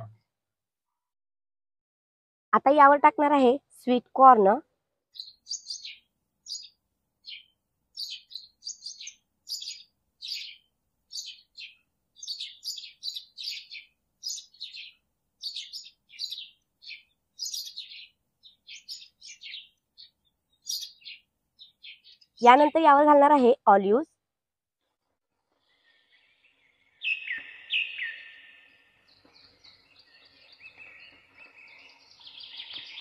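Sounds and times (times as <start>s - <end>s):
small birds chirping: 3.1s - 23.9s, 25.5s - 33.0s.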